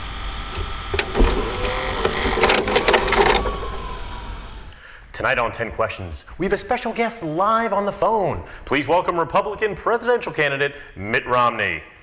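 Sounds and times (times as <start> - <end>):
vcr mechanism whirring and clicking: 0.0 - 4.7.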